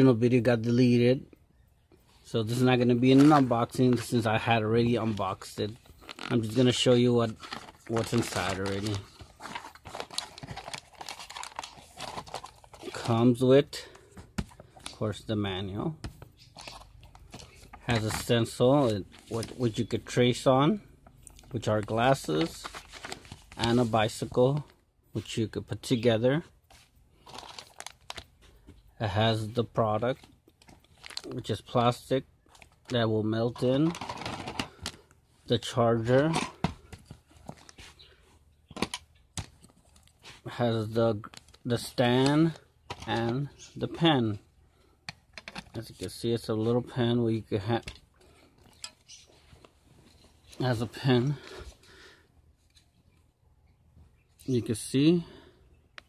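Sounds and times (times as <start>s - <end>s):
cardboard and paper rustling: 2.5s - 13.4s, 16.6s - 19.9s, 21.7s - 24.7s, 26.7s - 28.7s, 30.2s - 31.3s, 36.0s - 38.0s
plastic charger handling sounds: 3.0s - 4.2s, 5.0s - 13.2s, 26.8s - 28.9s, 32.4s - 35.2s, 36.0s - 40.2s, 41.2s - 43.7s, 45.0s - 46.1s.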